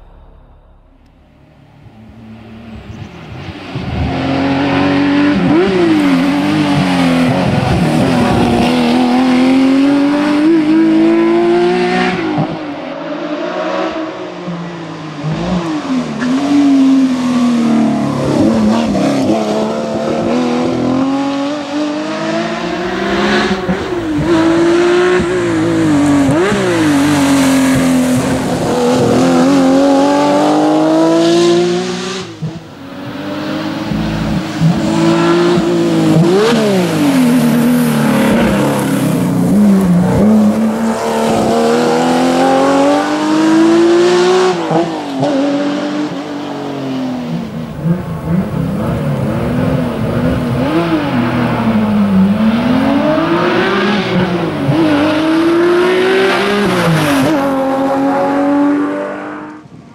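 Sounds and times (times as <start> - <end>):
rally car engine revving: 0.0 - 59.8.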